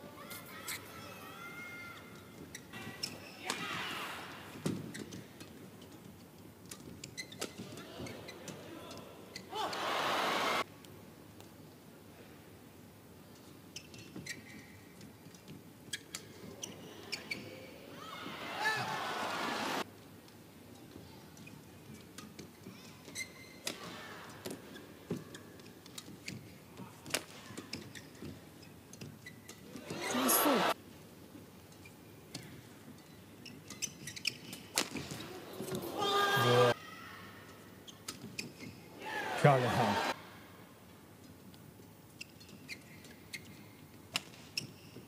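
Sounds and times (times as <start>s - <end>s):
shoes squeaking on court: 1.8s - 3.7s, 4.5s - 9.6s, 13.3s - 17.8s, 20.8s - 36.8s, 37.8s - 38.9s, 41.2s - 45.0s
crowd cheering: 9.6s - 10.6s, 18.2s - 19.8s, 29.9s - 30.8s, 39.0s - 40.2s
crowd shouting: 9.6s - 10.6s, 18.2s - 19.8s, 29.9s - 30.8s, 39.0s - 40.2s.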